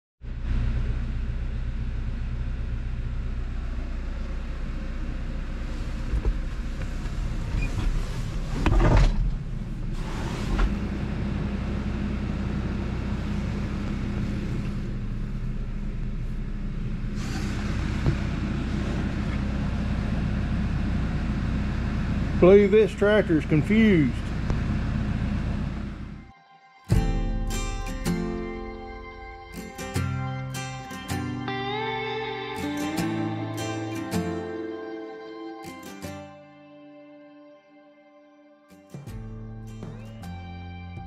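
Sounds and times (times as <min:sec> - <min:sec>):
tractor engine humming: 0:00.2 - 0:08.6, 0:09.2 - 0:26.3, 0:26.9 - 0:36.1.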